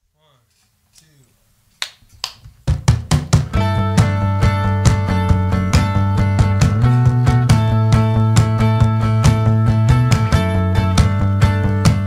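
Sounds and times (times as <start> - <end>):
electric bass: 3.3 - 12.0
strummed acoustic guitars: 3.4 - 12.0.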